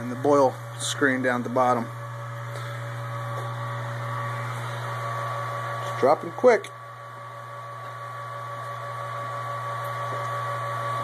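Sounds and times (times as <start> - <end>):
electric pump humming: 0.0 - 11.0.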